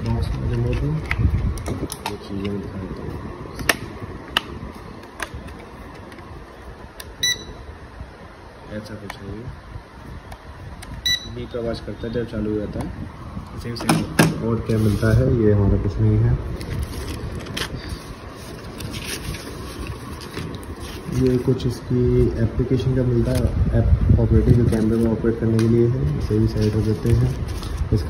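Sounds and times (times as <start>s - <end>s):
short high-pitched beep: 7.2s - 7.6s, 11.0s - 11.4s.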